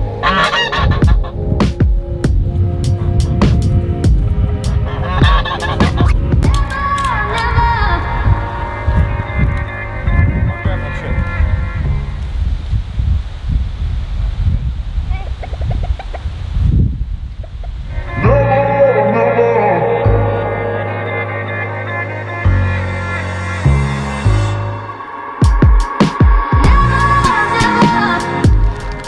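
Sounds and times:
poultry calling: 0:00.0 - 0:01.4, 0:04.7 - 0:06.3
wind rumbling on microphone: 0:00.0 - 0:21.2.

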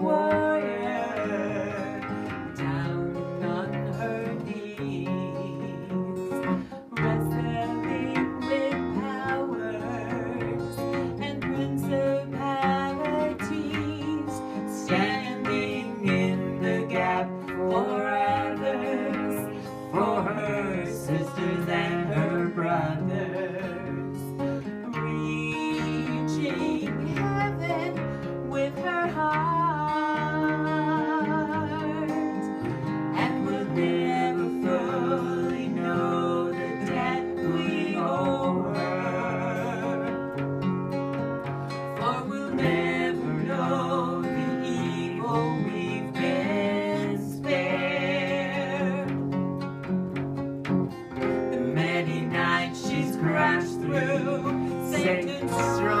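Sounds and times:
woman singing: 0:00.0 - 0:49.5, 0:51.2 - 0:56.0
acoustic guitars strumming: 0:00.0 - 0:56.0.

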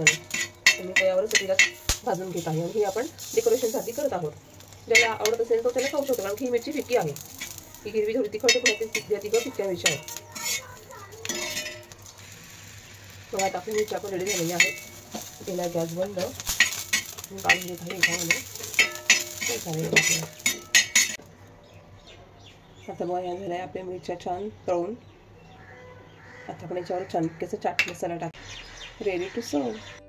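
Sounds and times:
chillies sizzling in oil: 0:00.0 - 0:21.2
metal tool scraping griddle: 0:00.0 - 0:21.2.

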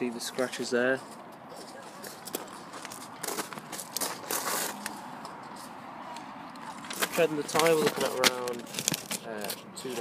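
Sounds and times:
paper rustling and crackling: 0:00.4 - 0:05.8, 0:06.5 - 0:10.0.

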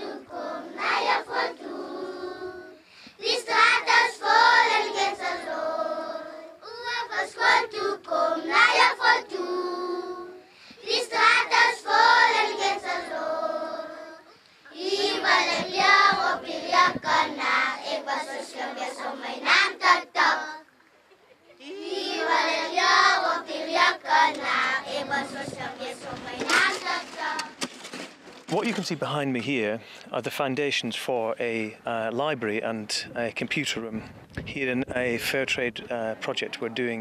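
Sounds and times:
children singing together: 0:00.0 - 0:20.7, 0:21.6 - 0:27.6.

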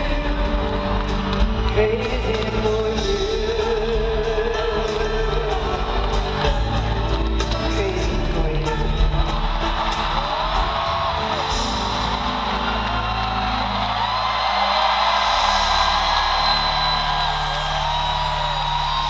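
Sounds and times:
crowd cheering and whooping: 0:00.0 - 0:19.0
live band music: 0:00.0 - 0:19.0.

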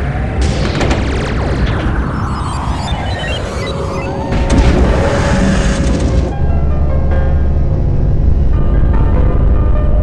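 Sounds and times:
music: 0:02.4 - 0:10.0.

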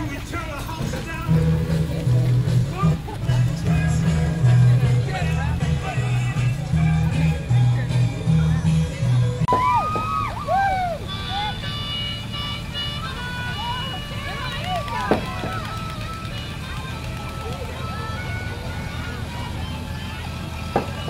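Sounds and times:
held melodic tones: 0:00.0 - 0:21.0
vehicle engine running low: 0:00.0 - 0:21.0
children's voices and calls: 0:11.0 - 0:21.0.

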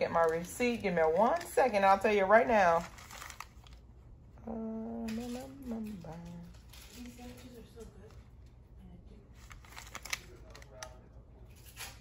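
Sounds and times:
paper receipt rustling: 0:00.0 - 0:03.8, 0:05.2 - 0:08.2, 0:09.3 - 0:12.0.

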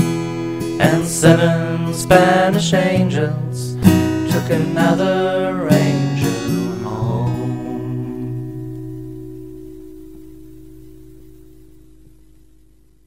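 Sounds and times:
acoustic guitar strummed chord: 0:00.0 - 0:12.9
person singing: 0:00.6 - 0:08.6.

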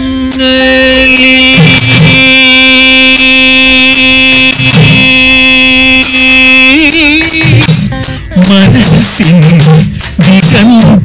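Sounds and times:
steady held drone note: 0:00.0 - 0:09.4
person singing: 0:00.0 - 0:11.0
sharp percussion strokes: 0:00.0 - 0:11.0.

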